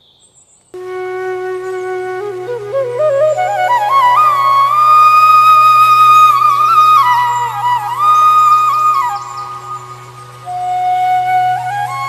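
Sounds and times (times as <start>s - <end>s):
flute melody: 0.8s - 12.0s.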